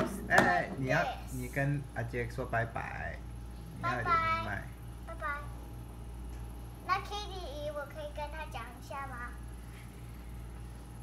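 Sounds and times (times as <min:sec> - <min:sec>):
child's high-pitched voice: 0:05.1 - 0:05.6, 0:06.8 - 0:09.5.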